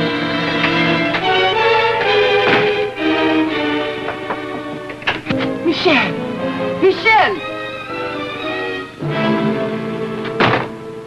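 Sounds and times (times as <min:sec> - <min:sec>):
orchestral film music: 0:00.0 - 0:11.0.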